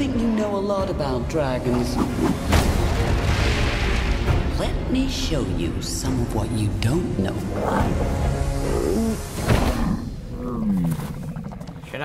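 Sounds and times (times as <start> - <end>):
dragon growling call: 7.6 - 11.9.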